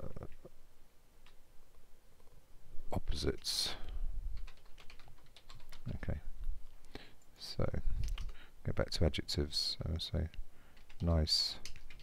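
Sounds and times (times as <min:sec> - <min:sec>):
computer keyboard typing: 0:03.3 - 0:06.1, 0:08.0 - 0:08.4, 0:10.7 - 0:12.0.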